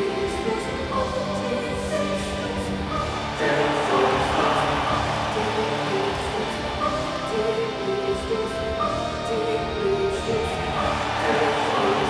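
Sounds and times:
choir singing held notes: 0:00.0 - 0:12.0.

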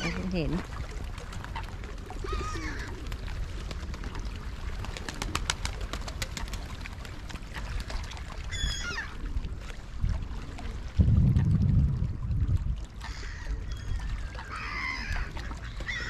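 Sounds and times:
wind rumble on microphone: 0:00.0 - 0:16.0
birds calling: 0:13.0 - 0:16.0.

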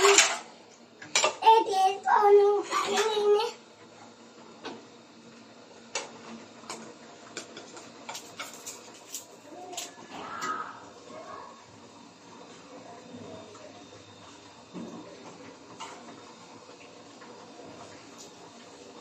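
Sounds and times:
stove hiss: 0:00.0 - 0:19.0.

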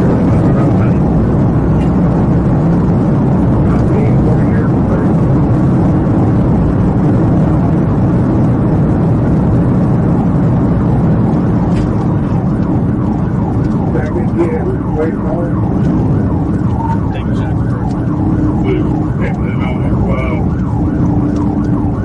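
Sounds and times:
road and wind noise: 0:00.0 - 0:22.0.

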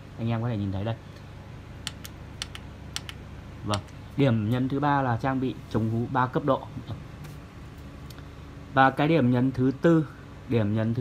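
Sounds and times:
push buttons clicking: 0:01.8 - 0:04.0.

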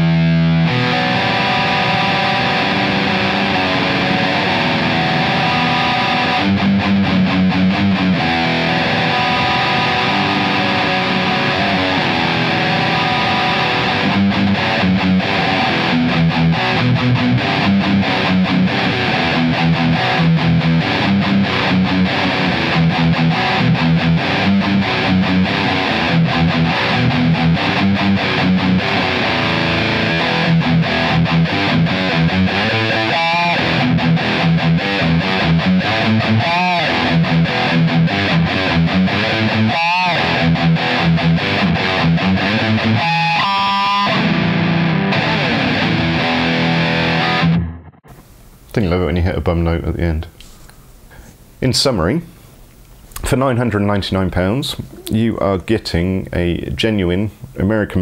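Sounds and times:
distorted electric guitar riff: 0:00.0 - 0:48.4.

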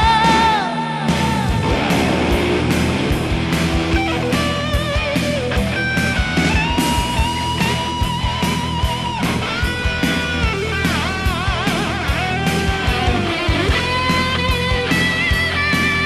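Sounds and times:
electric guitar lead: 0:00.0 - 0:16.0
steady drum beat: 0:00.0 - 0:16.0.

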